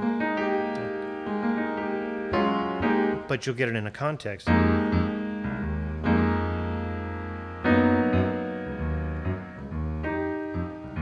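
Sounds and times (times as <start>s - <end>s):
piano tone keyboard chord: 0.0s - 3.7s, 4.4s - 11.0s.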